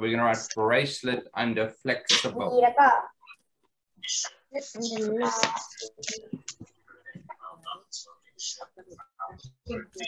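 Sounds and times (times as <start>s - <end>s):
indistinct voice over video call: 0.0s - 10.0s.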